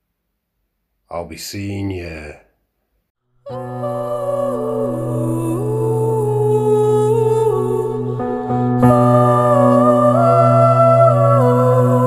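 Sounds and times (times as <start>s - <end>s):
sliding melody: 3.5s - 12.0s
steady low drone: 3.5s - 12.0s.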